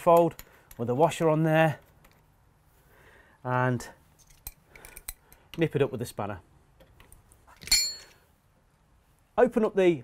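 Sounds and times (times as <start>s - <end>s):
spanner clinking on metal fittings: 0.0s - 1.2s.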